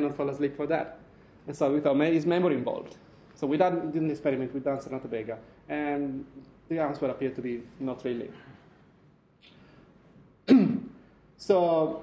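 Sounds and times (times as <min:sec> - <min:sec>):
faint intake of breath: 0:08.3 - 0:10.2
man clearing throat: 0:10.4 - 0:11.0.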